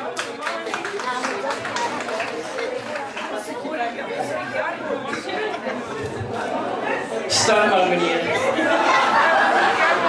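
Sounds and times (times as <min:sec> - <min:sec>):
audience chatter in echoing hall: 0:00.0 - 0:10.0.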